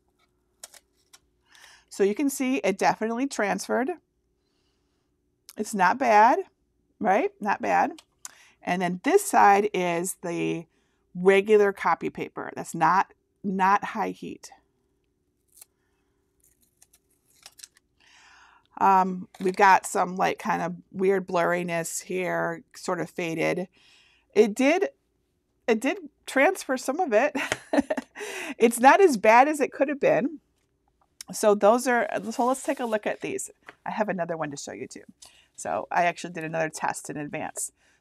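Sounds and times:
faint steady hum: 0.0s - 38.0s
tape peeling ticks: 0.2s - 1.3s, 16.4s - 17.8s
paper rustling: 16.4s - 17.8s, 32.0s - 33.9s.

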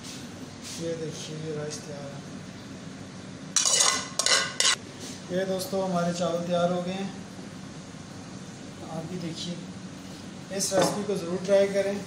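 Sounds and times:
metal spoon scraping steel pot: 3.6s - 4.8s.

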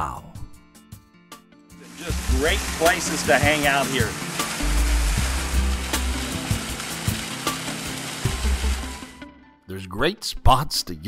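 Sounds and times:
background music with bass: 0.0s - 9.7s
waterfall splashing into pond: 1.8s - 9.2s.

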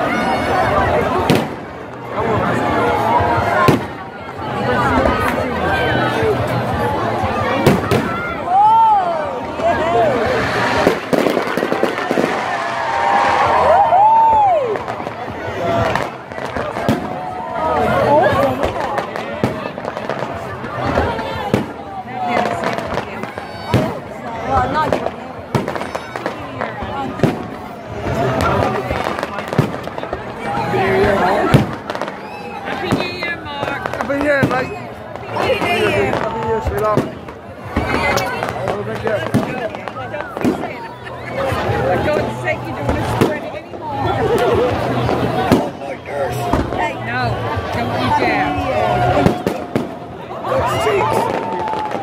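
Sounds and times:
crowd voices: 0.0s - 52.0s
firework bang: 1.2s - 1.8s, 3.6s - 4.0s, 7.6s - 8.3s, 9.6s - 13.4s, 14.8s - 17.3s, 18.6s - 21.8s, 24.9s - 30.3s, 31.4s - 40.8s, 44.4s - 45.8s, 49.2s - 50.1s.

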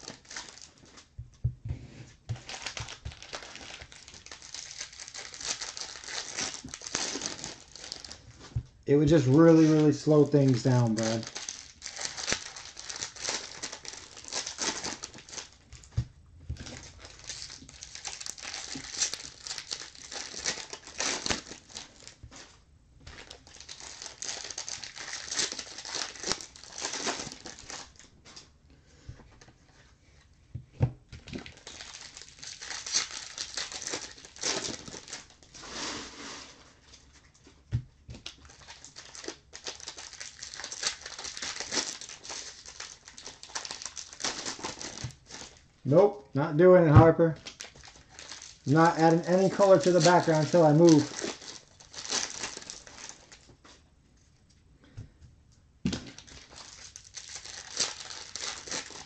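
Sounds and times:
foil wrappers crinkling and tearing: 0.0s - 1.1s, 2.3s - 16.0s, 16.6s - 28.5s, 31.2s - 37.4s, 38.1s - 45.8s, 46.8s - 53.7s, 55.9s - 59.0s.

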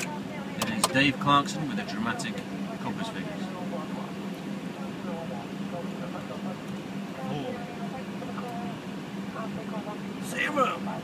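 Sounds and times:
car cabin hum: 0.0s - 11.0s
faint talk: 0.0s - 11.0s.

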